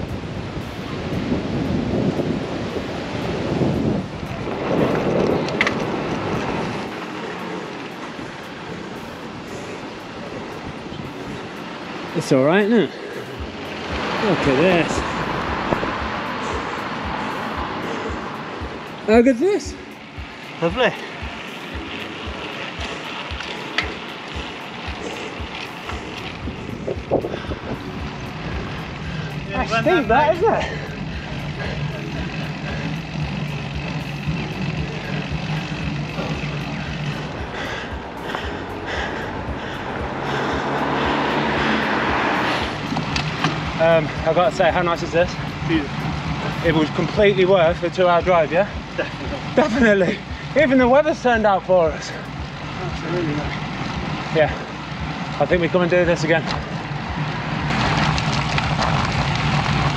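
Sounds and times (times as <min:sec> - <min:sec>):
wind rushing over microphone: 0:00.0 - 0:12.2, 0:13.0 - 0:19.1, 0:21.1 - 0:47.4
background music with low beat: 0:00.0 - 0:57.8
tyre noise on wet tarmac: 0:20.4 - 0:59.9.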